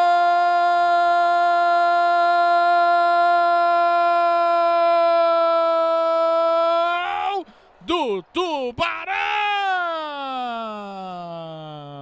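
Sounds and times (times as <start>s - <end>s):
commentator shouting goal: 5.6s - 12.0s.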